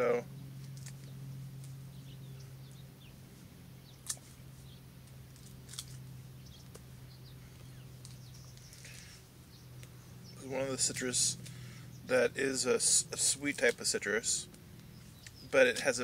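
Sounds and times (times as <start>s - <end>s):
steady low hum: 0.0s - 16.0s
rind tearing: 0.6s - 1.8s, 5.1s - 6.0s
sharp snaps: 4.0s - 4.4s.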